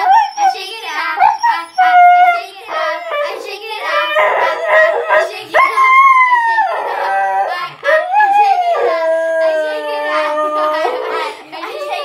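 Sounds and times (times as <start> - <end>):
dog howling: 0.0 - 0.6, 1.2 - 11.4.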